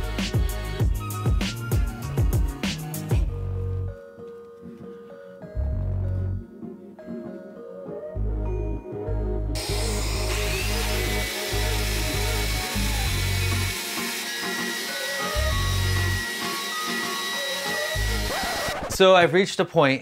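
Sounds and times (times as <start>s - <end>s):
background music: 0.0s - 19.4s
electric sander on wood: 9.6s - 18.8s.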